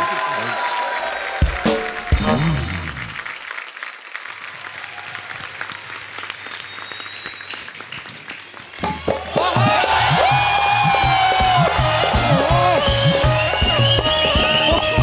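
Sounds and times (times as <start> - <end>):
studio audience applauding: 0.0 - 15.0
loud music with sliding notes: 1.6 - 3.0, 9.6 - 15.0.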